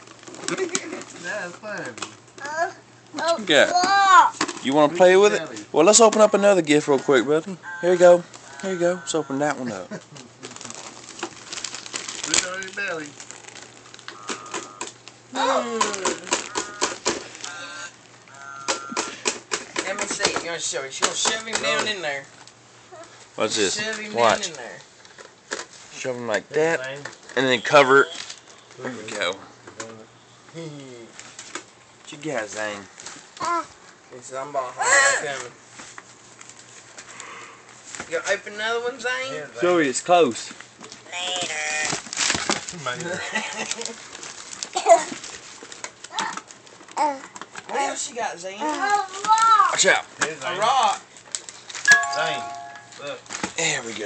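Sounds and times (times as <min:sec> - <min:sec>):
wrapping paper crinkling and tearing: 0:00.0 - 0:03.2, 0:08.1 - 0:18.2, 0:27.0 - 0:28.9, 0:35.3 - 0:38.4, 0:39.6 - 0:51.9, 0:52.8 - 0:54.0
small child vocalising: 0:33.4 - 0:33.7, 0:47.0 - 0:47.3
brief high tones: 0:51.9 - 0:53.0.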